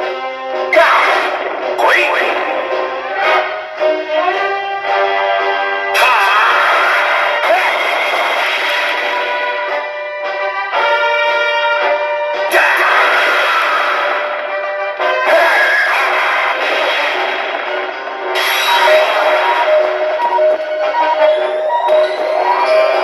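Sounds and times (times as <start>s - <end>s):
battle sound effects: 0.6s - 3.6s, 6.0s - 9.5s, 12.5s - 21.0s
pachinko game music: 0.6s - 4.4s, 5.0s - 23.0s
voice clips: 0.7s - 2.8s, 6.0s - 8.4s, 12.5s - 13.3s.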